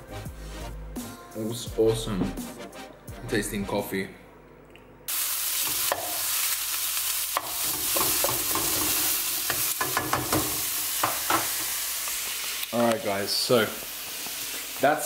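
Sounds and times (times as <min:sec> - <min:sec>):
chicken sizzling in a pan: 0:05.1 - 0:15.0
spatula scraping and tapping pan: 0:07.4 - 0:11.5.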